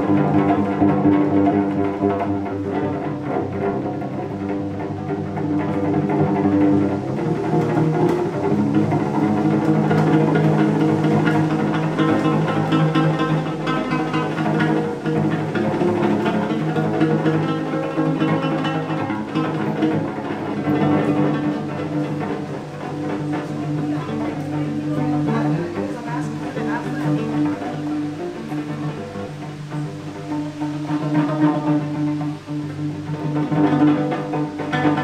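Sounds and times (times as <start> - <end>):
cello playing low notes: 0.0 - 35.0.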